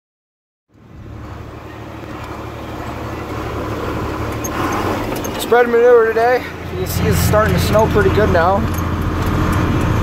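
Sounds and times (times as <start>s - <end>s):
tractor engine running: 0.7s - 10.0s.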